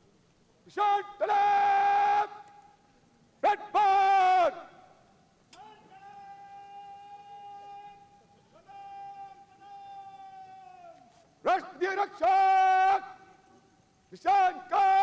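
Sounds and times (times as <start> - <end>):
person shouting commands: 0.7 - 2.4, 5.6 - 13.2, 14.1 - 15.0.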